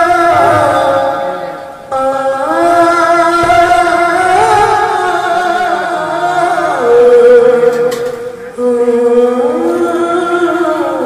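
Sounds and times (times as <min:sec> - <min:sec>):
devotional music held notes: 0:00.0 - 0:11.0.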